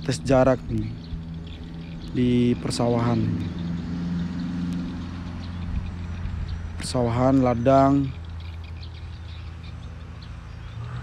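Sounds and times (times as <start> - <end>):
low steady engine hum: 0.0 - 11.0.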